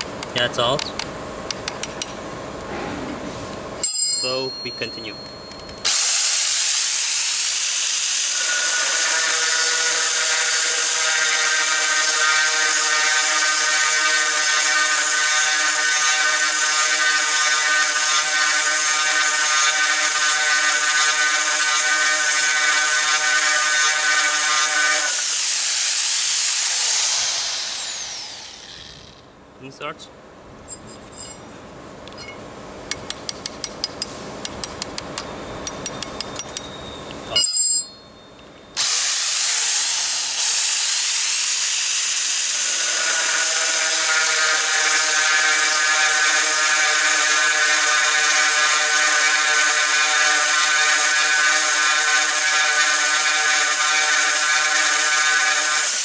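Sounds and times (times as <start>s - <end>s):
wrench clicking on metal: 0.0s - 2.2s, 32.1s - 36.8s
grinder drilling into tile: 5.9s - 29.2s, 38.8s - 56.0s
grinder winding down: 8.3s - 29.2s.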